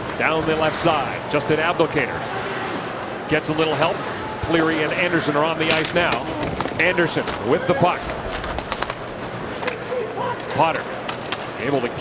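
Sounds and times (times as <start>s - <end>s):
crowd murmur: 0.6s - 11.5s
hockey sticks and puck clacking: 5.2s - 12.0s.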